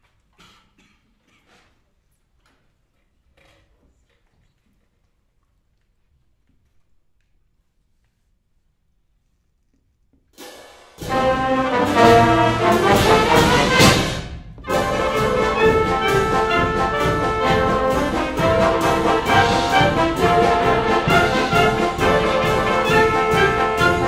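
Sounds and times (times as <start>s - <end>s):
wind ensemble playing loud: 11.0s - 24.0s.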